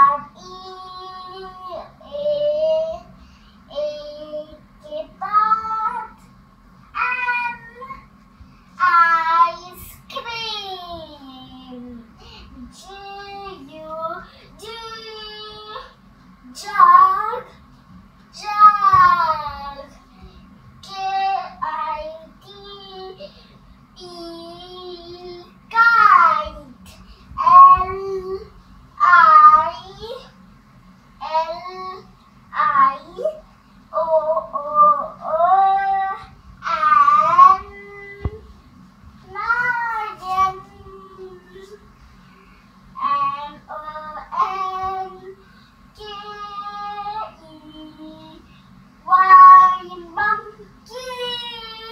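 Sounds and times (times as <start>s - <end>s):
young child singing: 20.8s - 23.3s, 24.0s - 30.2s, 34.0s - 38.4s, 39.3s - 41.8s, 43.0s - 45.4s, 46.0s - 48.4s, 49.1s - 51.9s.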